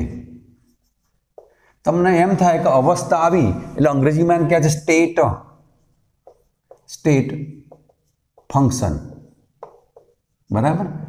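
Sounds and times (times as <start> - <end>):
speech: 0.0 - 0.4, 1.8 - 5.5, 6.9 - 7.6, 8.5 - 9.2, 10.5 - 11.0
marker pen stroke on whiteboard: 0.0 - 2.4, 5.6 - 10.5.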